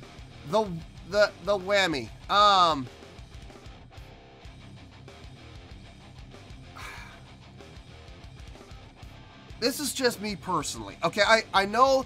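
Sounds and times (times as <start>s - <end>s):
quiet guitar music: 0.0s - 12.0s.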